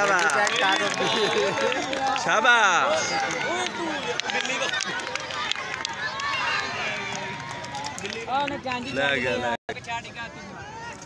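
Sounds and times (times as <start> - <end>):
crowd shouting and talking: 0.0 - 11.0.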